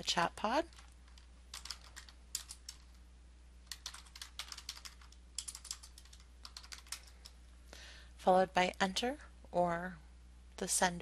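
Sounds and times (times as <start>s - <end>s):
computer keyboard typing: 0.7s - 3.0s, 3.6s - 7.4s.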